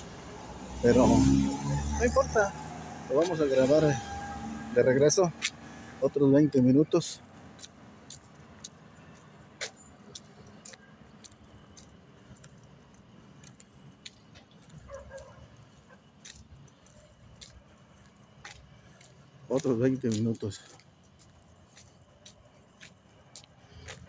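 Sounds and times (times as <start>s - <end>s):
low road rumble: 0.0s - 24.0s.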